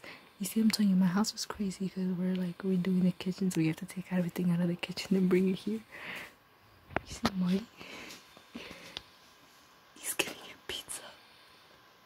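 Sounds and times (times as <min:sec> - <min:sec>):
person whispering: 0:10.0 - 0:11.2.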